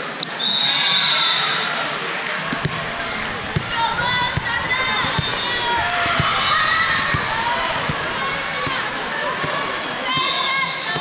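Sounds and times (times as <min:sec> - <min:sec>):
din of echoing voices: 0:02.3 - 0:11.0
balls thudding on hard court: 0:02.4 - 0:11.0.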